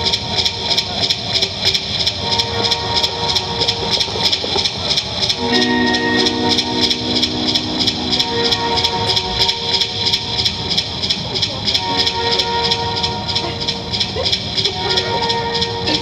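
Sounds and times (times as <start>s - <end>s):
live rock band playing: 5.4s - 9.7s.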